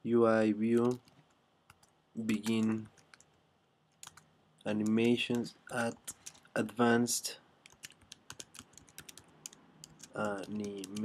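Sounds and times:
keyboard typing: 0:00.7 - 0:06.6, 0:07.6 - 0:11.0.

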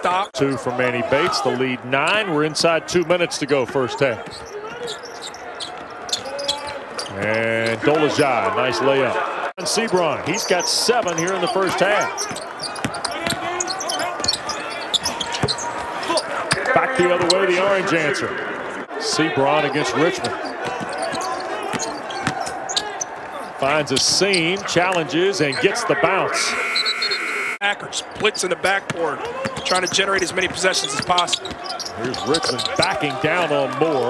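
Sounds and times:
faint shoe squeaks: 0:04.2 - 0:07.8, 0:11.1 - 0:16.4, 0:20.4 - 0:23.0, 0:29.4 - 0:32.8.

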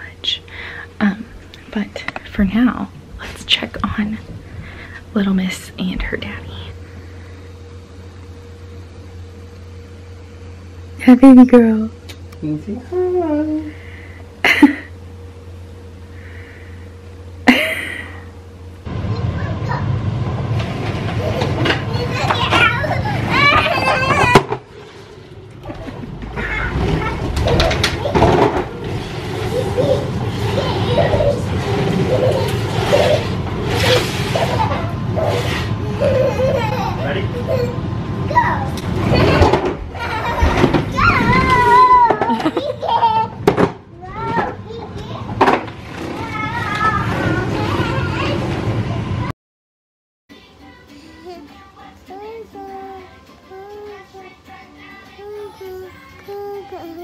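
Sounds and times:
toy truck rumbling and clattering: 0:45.3 - 0:48.8
child vocal sounds: 0:52.1 - 0:54.3, 0:55.2 - 0:57.0.

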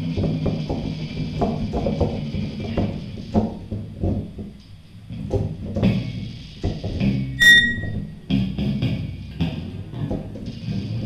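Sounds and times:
bright ringing tone: 0:07.4 - 0:08.0.

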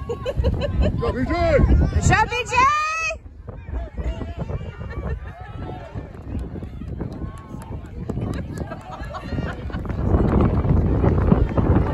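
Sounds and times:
crowd voices talking and calling: 0:00.0 - 0:11.9.

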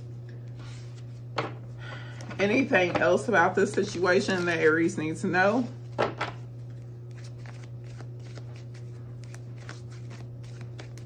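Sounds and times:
steady low hum: 0:00.0 - 0:11.0
cards being shuffled: 0:05.9 - 0:11.0.

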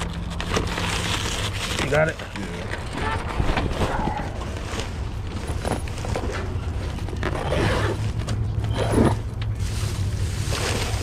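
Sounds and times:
plastic shrink-wrap crinkling: 0:00.0 - 0:03.4, 0:09.6 - 0:11.0.

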